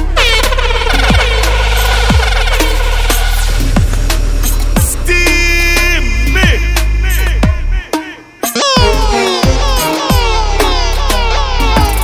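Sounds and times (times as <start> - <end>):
air horn: 0.0 - 3.6
deep bass: 0.0 - 12.0
kick drums: 6.4 - 7.9, 8.8 - 10.4.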